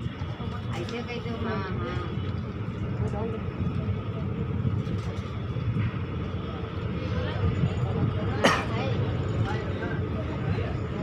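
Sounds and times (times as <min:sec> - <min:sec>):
faint passenger voices: 0:00.0 - 0:11.0
train wheels rumbling on track: 0:00.0 - 0:11.0.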